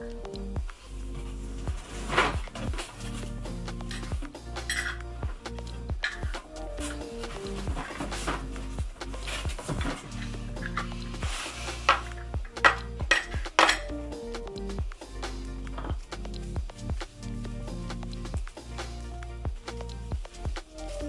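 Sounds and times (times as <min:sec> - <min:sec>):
background music: 0:00.0 - 0:21.0
metal lids clinking on glass jars: 0:03.9 - 0:05.0, 0:11.8 - 0:13.9.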